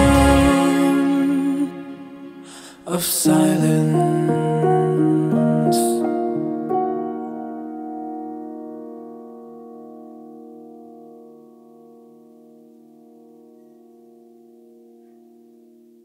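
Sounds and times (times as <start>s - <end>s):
piano chord held: 0.0s - 16.0s.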